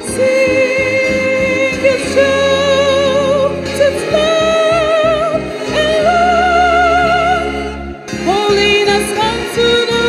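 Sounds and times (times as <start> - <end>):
violin orchestra: 0.0 - 10.0.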